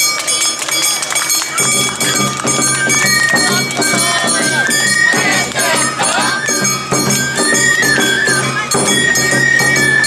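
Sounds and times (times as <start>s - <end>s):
street band music: 0.1s - 10.0s
people shouting: 3.3s - 6.8s.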